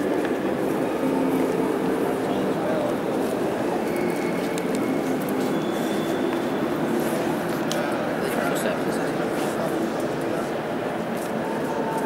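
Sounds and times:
echoing crowd voices: 0.0s - 12.0s.

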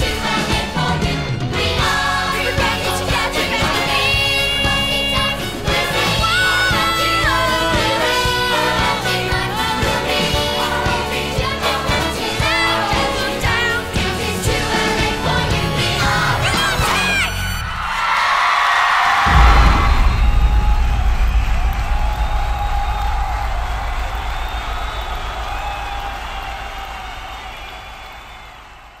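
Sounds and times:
crowd cheering and whooping: 16.8s - 29.0s
deep low rumble: 19.2s - 28.8s.

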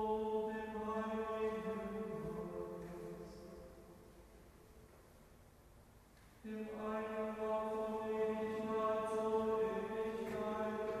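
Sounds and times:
liturgical chant in a church: 0.0s - 4.6s, 6.4s - 11.0s.

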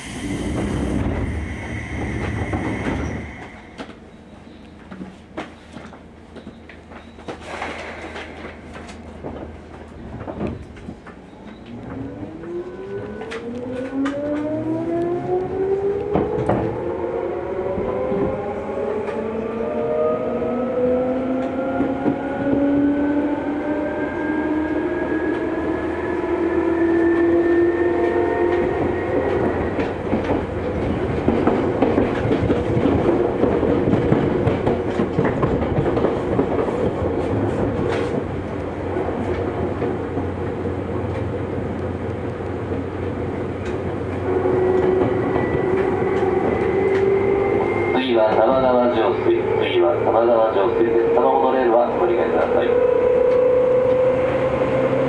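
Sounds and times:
train rolling noise: 0.0s - 55.0s
wheels clacking over rail joints: 28.6s - 44.2s
electric train motors whining: 44.2s - 55.0s.

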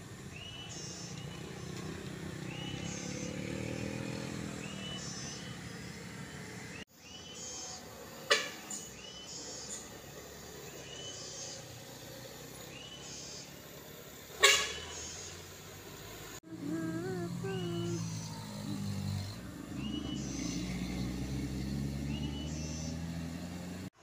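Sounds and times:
motorcycle engine passing: 0.1s - 6.8s, 14.7s - 24.0s
cargo truck approaching: 15.4s - 23.9s.

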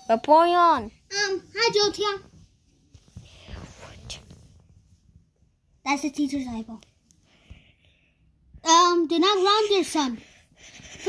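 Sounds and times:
person whispering: 3.3s - 4.4s.

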